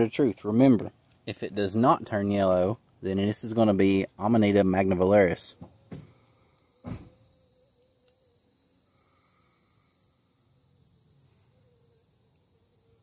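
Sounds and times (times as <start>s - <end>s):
high-pitched insect chorus: 0.0s - 13.0s.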